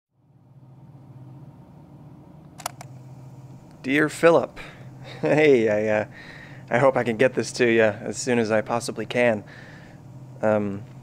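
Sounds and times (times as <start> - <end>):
low steady hum: 0.2 - 11.0
quick sharp clicks: 2.5 - 2.9.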